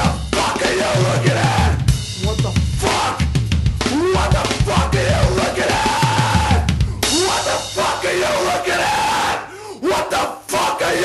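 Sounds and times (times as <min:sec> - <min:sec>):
voices shouting together: 0:03.9 - 0:11.0.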